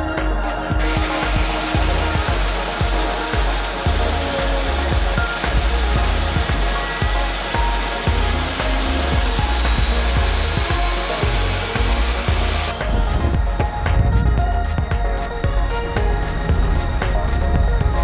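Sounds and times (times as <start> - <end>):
music with pulsing bass beat: 0.0 - 18.0
turboprop engines roaring: 0.0 - 18.0.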